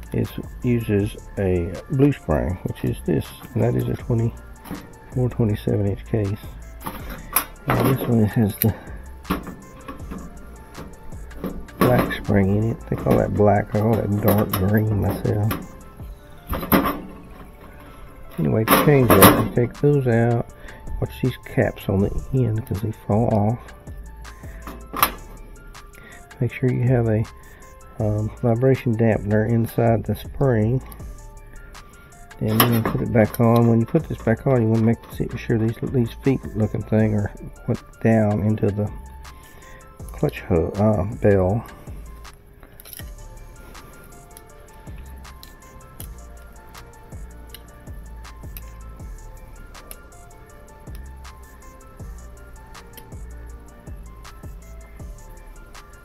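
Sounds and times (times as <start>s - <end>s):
soft background music: 0.0s - 56.0s
pliers clicking against metal: 42.6s - 43.2s, 44.1s - 48.8s, 49.8s - 51.5s, 52.8s - 53.2s.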